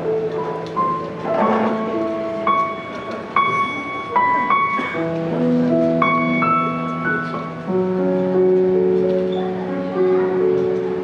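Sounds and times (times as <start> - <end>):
electronic keyboard notes: 0.0 - 11.0.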